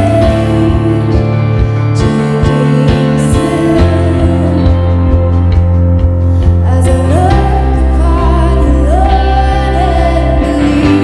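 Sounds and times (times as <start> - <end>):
bass line: 0.0 - 11.0
drum beats: 0.0 - 11.0
worship band playing slow song: 0.0 - 11.0.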